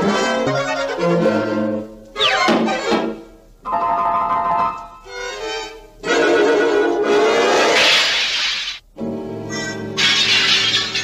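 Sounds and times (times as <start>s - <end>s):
cartoon soundtrack music: 0.0s - 7.9s, 9.4s - 11.0s.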